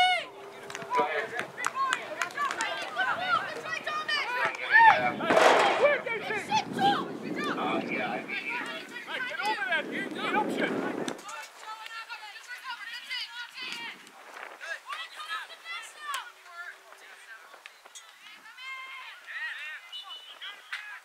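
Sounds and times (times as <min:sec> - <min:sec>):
voices calling and shouting: 0:00.0 - 0:21.0.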